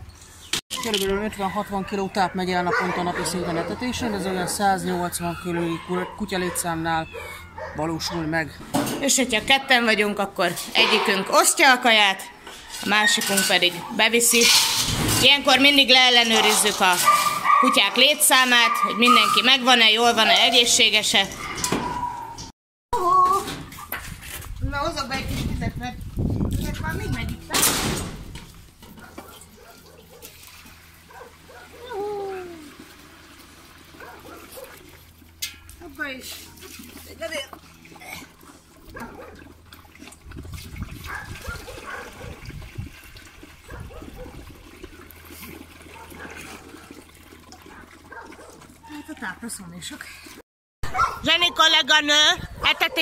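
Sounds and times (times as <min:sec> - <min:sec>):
dogs whining and whimpering: 0:02.8 - 0:07.9, 0:21.3 - 0:22.5
water pouring and splashing: 0:28.1 - 0:50.4.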